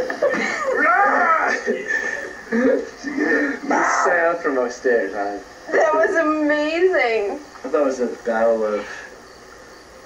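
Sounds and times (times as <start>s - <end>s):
man calling out: 3.6s - 4.5s.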